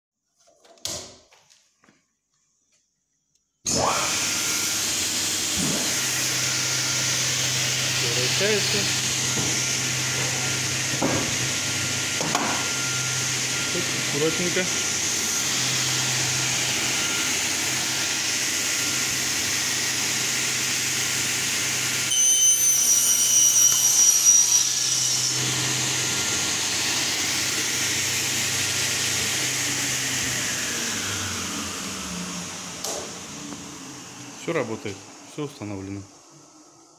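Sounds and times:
saw winding down: 0:03.7 - 0:36.0
saw cutting with high whine: 0:03.7 - 0:36.6
panel saw humming: 0:03.7 - 0:36.8.

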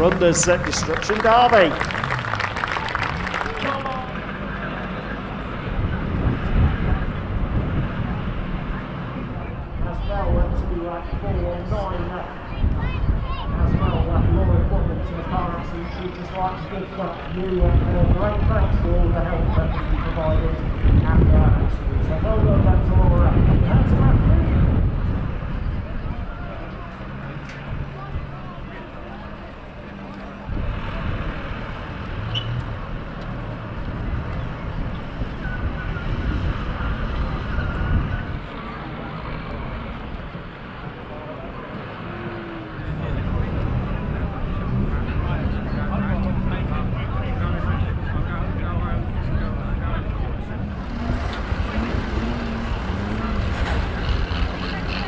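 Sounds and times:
background voices: 0:00.0 - 0:04.4, 0:40.8 - 0:55.0
cars being dragged: 0:00.0 - 0:06.8, 0:50.3 - 0:55.0
tractor engines running: 0:00.0 - 0:55.0.

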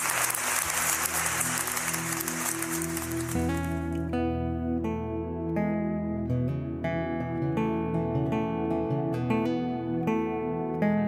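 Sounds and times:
applause: 0:00.0 - 0:04.1
acoustic guitar notes: 0:03.4 - 0:11.0.

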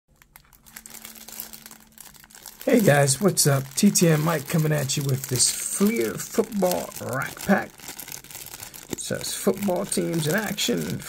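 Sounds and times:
plastic wrapper crinkling: 0:00.1 - 0:11.0.

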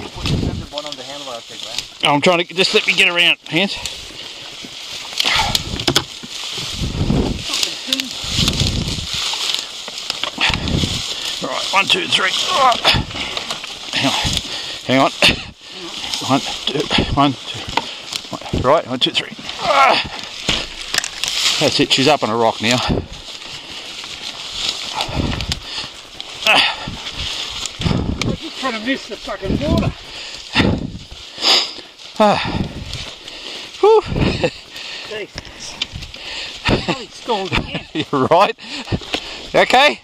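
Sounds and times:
branches snapping: 0:00.0 - 0:39.7
branches rustling and crackling: 0:00.0 - 0:40.0
heavy breathing: 0:03.7 - 0:05.9, 0:06.5 - 0:18.7, 0:22.6 - 0:36.9, 0:38.5 - 0:39.6
dirt bike scuffing and knocking: 0:04.4 - 0:14.5
low thuds: 0:26.8 - 0:28.4.

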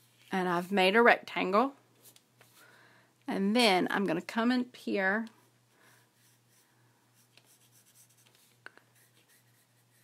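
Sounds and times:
pencil scratching on paper: 0:05.9 - 0:10.0.

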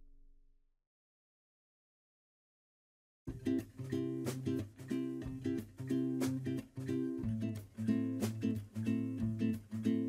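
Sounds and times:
acoustic guitar strumming chords: 0:03.3 - 0:10.0.

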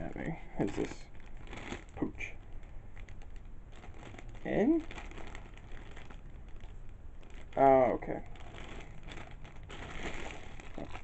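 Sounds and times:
low steady hum: 0:00.0 - 0:11.0
plastic packaging crinkling: 0:00.0 - 0:11.0.

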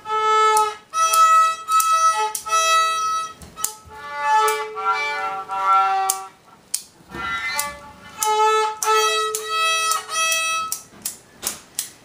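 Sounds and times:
child playing violin: 0:00.0 - 0:10.9.

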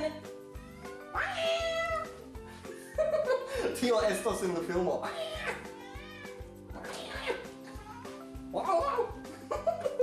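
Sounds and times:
background music with steady beat: 0:00.0 - 0:10.0
cat meowing: 0:00.5 - 0:02.2, 0:05.0 - 0:09.1.

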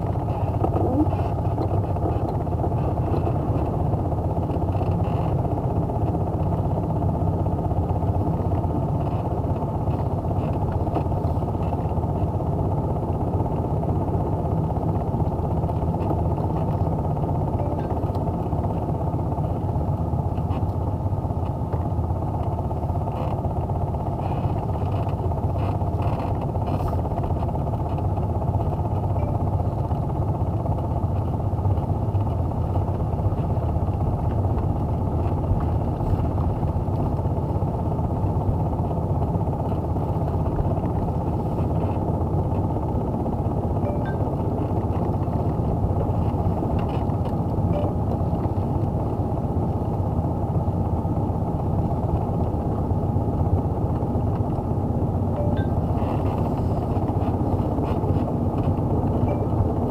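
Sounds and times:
car engine and tyre noise: 0:00.0 - 0:59.9.

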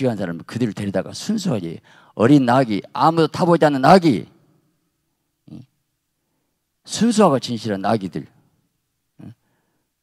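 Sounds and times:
man's sharp breath into microphone: 0:01.8 - 0:02.2, 0:09.4 - 0:10.0.

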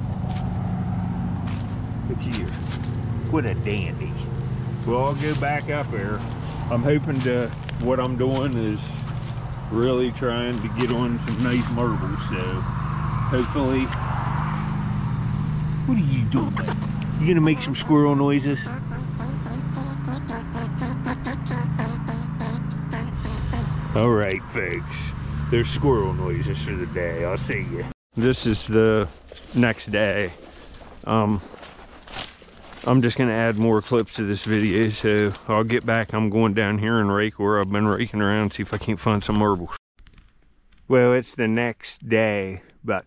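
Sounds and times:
squirrel chattering: 0:16.0 - 0:23.8.

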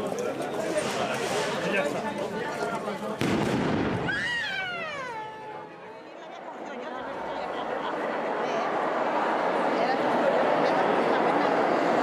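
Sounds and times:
crowd chatter: 0:00.0 - 0:12.0
firecracker bang: 0:03.2 - 0:04.4.

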